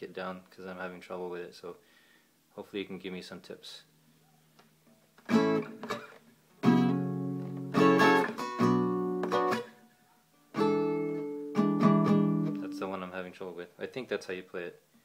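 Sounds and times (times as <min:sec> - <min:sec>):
acoustic guitar strumming chords: 0:05.3 - 0:09.8, 0:10.4 - 0:13.0.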